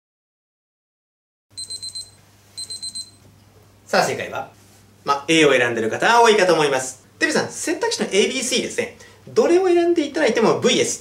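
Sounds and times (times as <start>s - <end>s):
timer alarm beeping: 1.6s - 3.2s.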